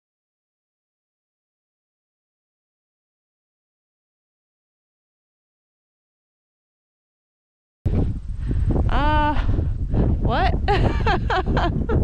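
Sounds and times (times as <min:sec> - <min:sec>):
wind buffeting microphone: 0:07.9 - 0:12.0.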